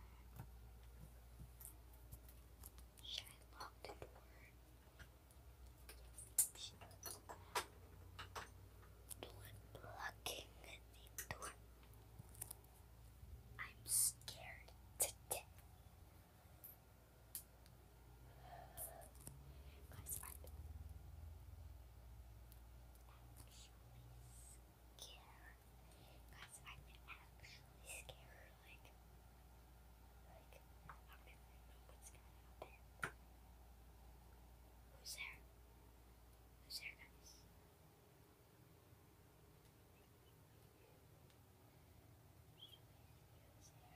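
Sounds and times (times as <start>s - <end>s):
faint low hum: 0.0s - 43.9s
girl whispering: 3.0s - 4.6s, 6.2s - 7.0s, 9.1s - 11.6s, 13.6s - 15.5s, 18.4s - 19.1s, 19.8s - 20.5s, 23.1s - 28.9s, 30.3s - 32.8s, 35.0s - 35.4s, 36.6s - 37.5s, 42.6s - 43.9s.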